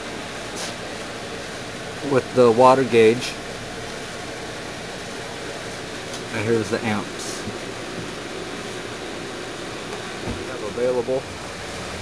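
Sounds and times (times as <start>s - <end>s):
steady gas hiss: 0.0s - 12.0s.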